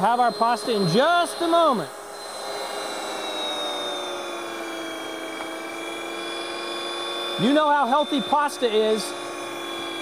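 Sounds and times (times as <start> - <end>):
kitchen machine motor whine: 0.0 - 10.0.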